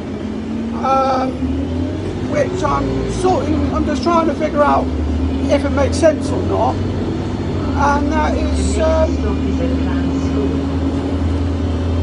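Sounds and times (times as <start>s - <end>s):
bus engine drone: 0.0s - 12.0s.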